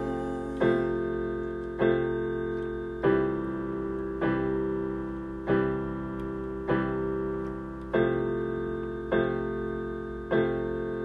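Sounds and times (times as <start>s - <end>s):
electronic keyboard piano chords: 0.0s - 11.0s.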